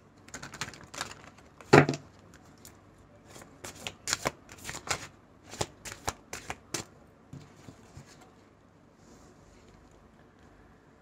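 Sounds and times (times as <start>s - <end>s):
cards shuffling and snapping: 3.6s - 6.9s.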